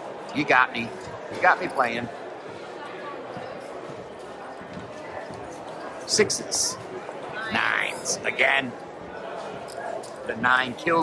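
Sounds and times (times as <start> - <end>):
casino hubbub: 0.0 - 11.0
faint distant voices: 0.0 - 11.0.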